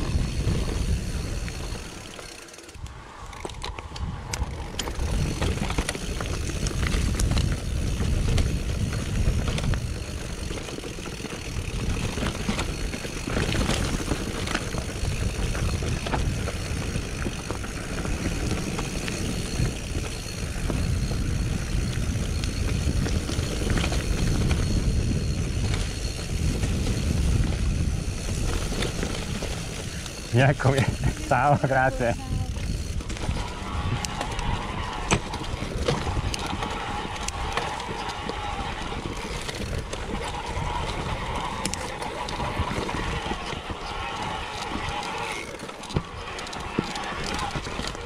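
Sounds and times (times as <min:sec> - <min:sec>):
bike clicks and rattles: 0:00.0 - 0:48.0
bike tyres rumbling on dirt: 0:00.0 - 0:48.0.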